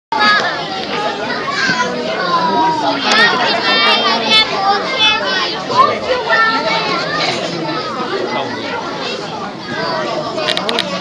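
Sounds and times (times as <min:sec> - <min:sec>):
children talking and calling out: 0:00.1 - 0:11.0.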